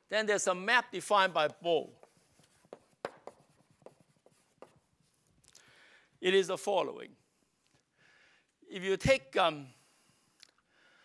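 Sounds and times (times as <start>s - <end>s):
chalk tapping and scraping on blackboard: 1.3s - 5.3s.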